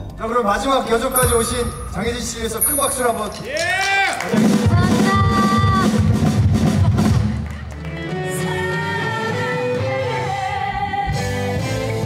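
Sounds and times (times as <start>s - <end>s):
drum and percussion hits: 0.0s - 7.6s
people clapping: 3.2s - 5.8s, 6.9s - 8.7s.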